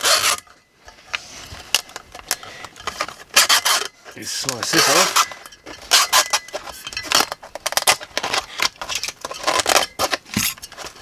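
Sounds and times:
knife rasping through speaker cone: 0:00.0 - 0:00.5, 0:03.0 - 0:07.3.

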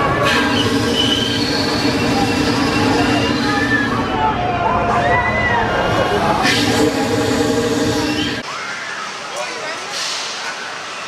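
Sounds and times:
ride mechanical drone: 0:00.0 - 0:11.0.

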